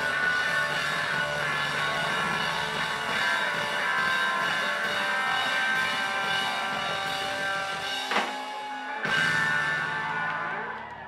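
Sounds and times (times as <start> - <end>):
live band playing ringing notes: 0.0 - 10.4.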